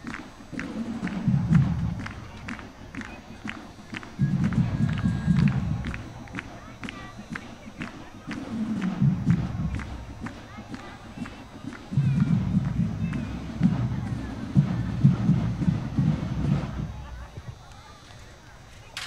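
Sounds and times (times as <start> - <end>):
light drum ticks: 0.0 - 18.2
low pulsing beats: 0.0 - 18.6
crowd chatter: 0.0 - 19.0
muffled marching band: 0.0 - 19.0.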